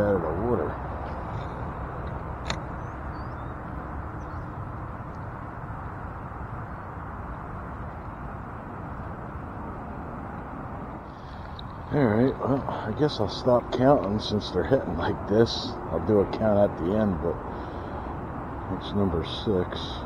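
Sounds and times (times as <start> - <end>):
wind rumble on microphone: 0.0 - 20.0
sharp click: 2.4 - 2.7.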